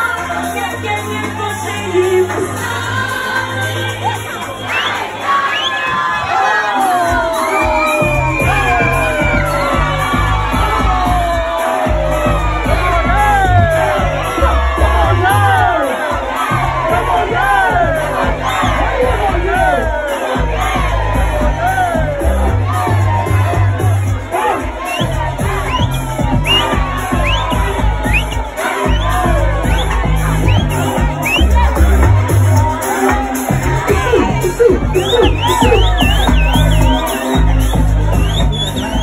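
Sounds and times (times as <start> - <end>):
loud dance music: 0.0 - 39.0
party crowd shouting and cheering: 0.0 - 39.0.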